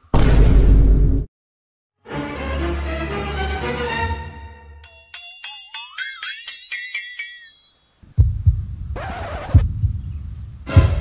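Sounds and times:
bright chiming notes climbing: 4.8s - 8.0s
low pulsing bass beat: 8.2s - 9.0s, 9.6s - 11.0s.

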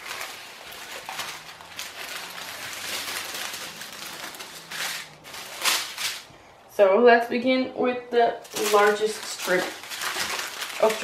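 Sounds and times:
plastic bags rustling: 0.0s - 6.4s, 8.4s - 11.0s.

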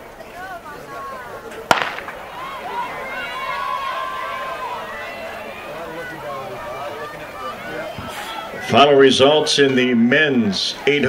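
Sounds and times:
spectators shouting: 0.0s - 11.0s
starter's pistol crack: 1.7s - 2.2s.

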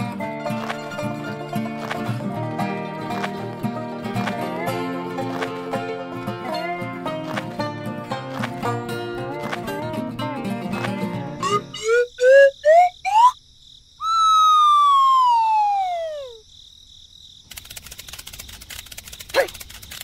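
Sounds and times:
music: 0.0s - 12.0s
insects chirring: 10.5s - 20.0s
downward sliding whistle tone: 11.4s - 13.4s, 14.0s - 16.4s
upward-gliding cartoon blips: 11.4s - 13.4s, 14.0s - 16.4s.

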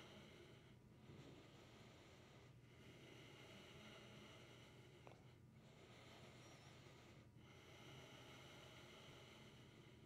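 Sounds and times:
breathing through the nose: 0.0s - 10.0s
low room hum: 0.0s - 10.0s.

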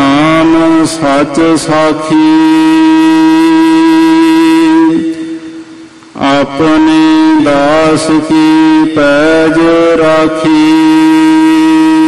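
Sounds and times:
long held sung note: 0.0s - 12.0s.

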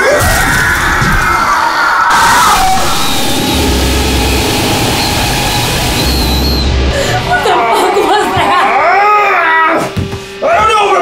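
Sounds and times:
loud noise: 0.0s - 10.0s
music: 2.1s - 11.0s.

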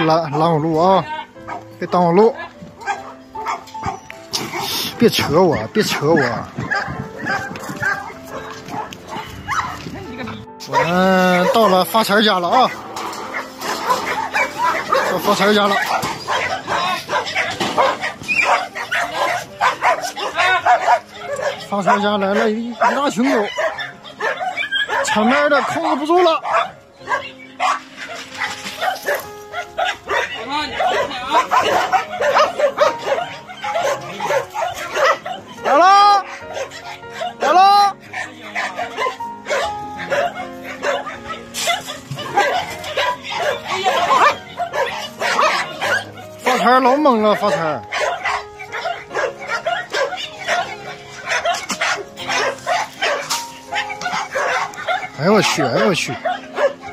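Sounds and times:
dogs barking and yipping: 0.0s - 56.9s.

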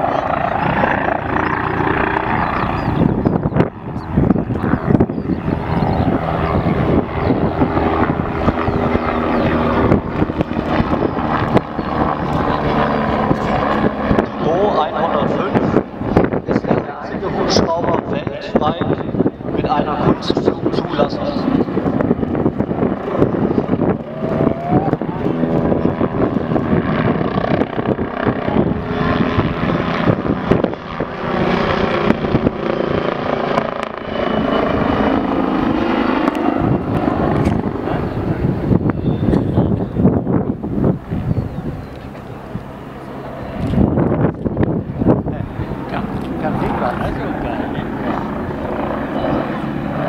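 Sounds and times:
helicopter rotor and turbines: 0.0s - 50.0s
people talking: 14.3s - 15.8s, 16.5s - 21.5s, 24.0s - 25.8s, 45.2s - 48.3s.

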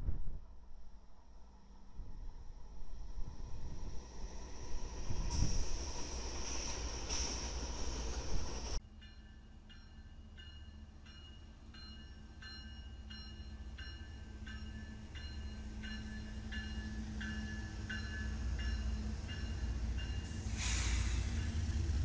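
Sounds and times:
passing freight train noise: 1.6s - 22.0s
railroad crossing bell ringing: 8.8s - 21.9s
diesel locomotive rumble: 13.2s - 22.0s.

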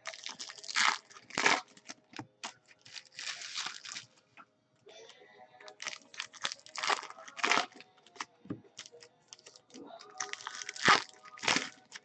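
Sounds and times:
packaging crinkling and rustling: 0.0s - 4.2s, 5.7s - 12.0s.

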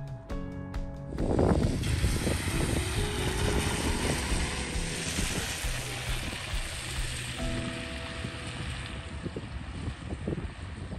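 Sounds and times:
wind gusting on microphone: 1.0s - 10.9s
car tyres hissing on wet road: 1.2s - 10.9s.

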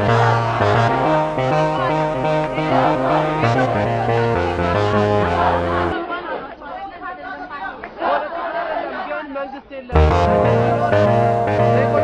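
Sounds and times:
music with held notes: 0.0s - 6.0s, 10.0s - 12.0s
crowd talking: 0.0s - 12.0s.

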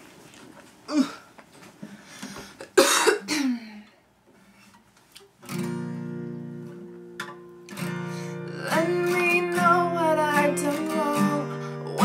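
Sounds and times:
woman coughing: 2.6s - 3.8s.

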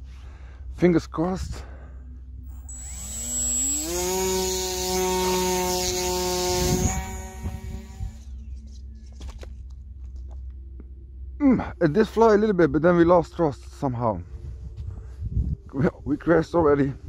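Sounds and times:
electric motor and propeller whine: 2.4s - 8.4s.

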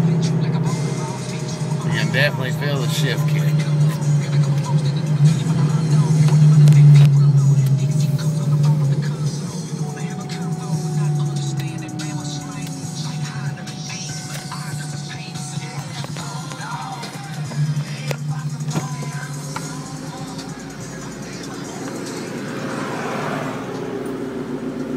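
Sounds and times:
car engine drone: 0.0s - 24.9s.

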